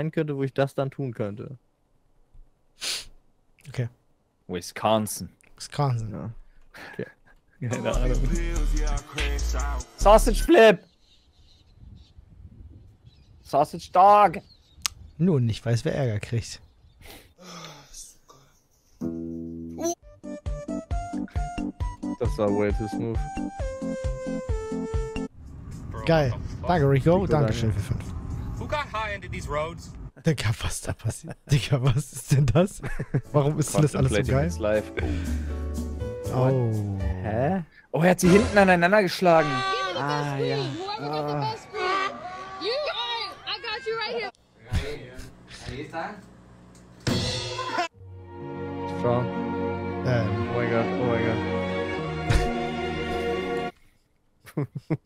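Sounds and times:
voices exclaiming: 0:38.2 - 0:44.4.

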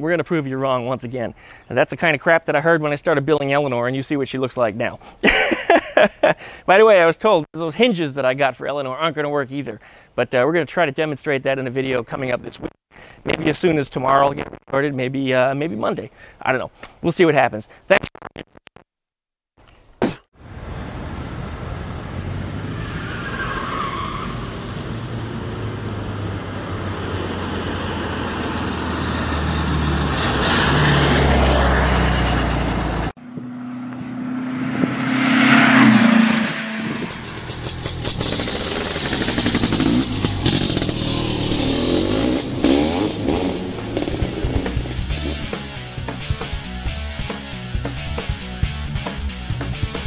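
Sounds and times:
engine-like sound: 0:20.5 - 0:45.7
rising and falling sweep: 0:20.8 - 0:45.7
music: 0:44.7 - 0:50.0.

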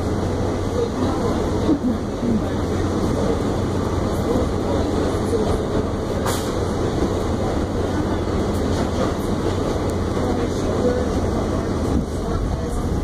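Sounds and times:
subway car wheels rumbling: 0:00.0 - 0:13.0.

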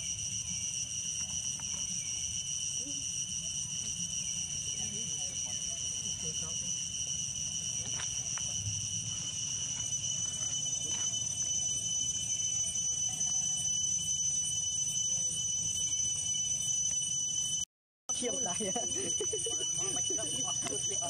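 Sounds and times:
high-pitched insect chorus: 0:00.0 - 0:21.0.

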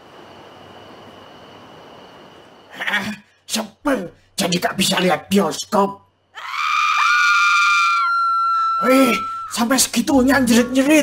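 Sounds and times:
people screaming in fright: 0:06.4 - 0:09.6.

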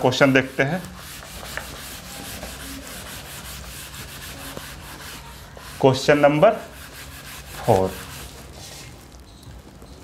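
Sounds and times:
duster scraping chalkboard: 0:00.0 - 0:09.0
person speaking: 0:07.5 - 0:08.2.

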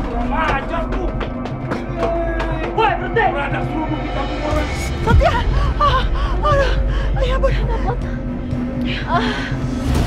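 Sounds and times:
background music: 0:00.0 - 0:10.0
woman moaning and gasping: 0:05.0 - 0:10.0.

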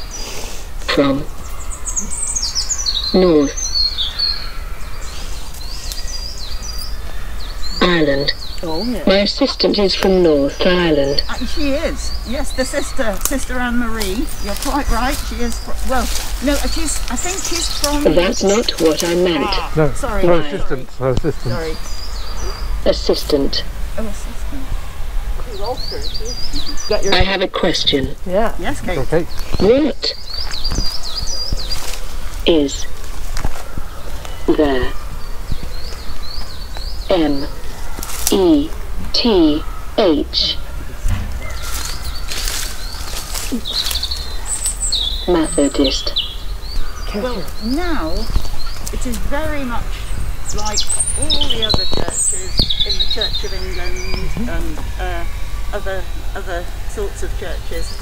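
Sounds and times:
low outdoor rumble: 0:00.0 - 0:58.0
small birds chirping: 0:00.0 - 0:58.0
songbird warbling: 0:00.0 - 0:58.0.

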